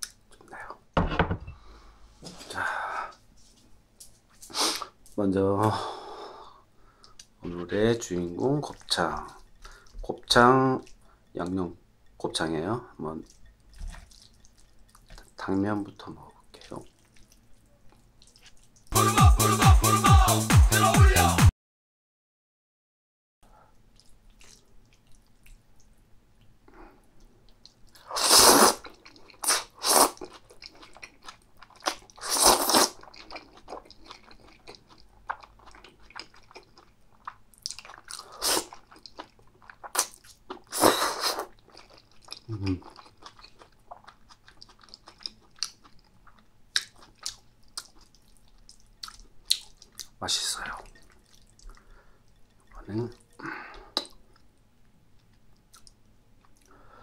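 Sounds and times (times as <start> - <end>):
wet chewing: 13.1 - 19.0, 23.9 - 26.5, 27.2 - 54.5, 55.1 - 56.8
slurping noodles: 28.0 - 30.3, 31.8 - 33.1, 39.9 - 41.6.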